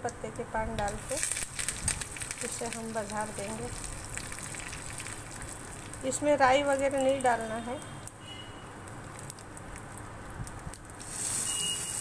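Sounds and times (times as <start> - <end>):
spices crackling in hot oil: 0.0 - 12.0.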